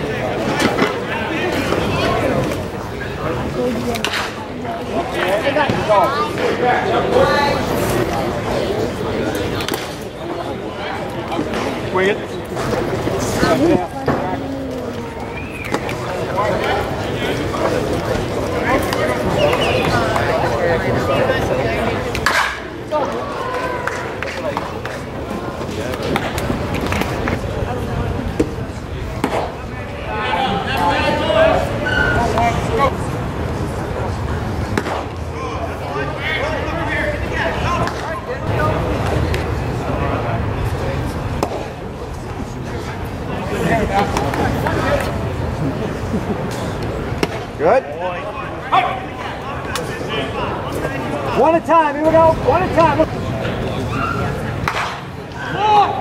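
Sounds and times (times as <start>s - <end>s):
crowd chatter: 0.0s - 56.0s
indistinct voices: 0.0s - 56.0s.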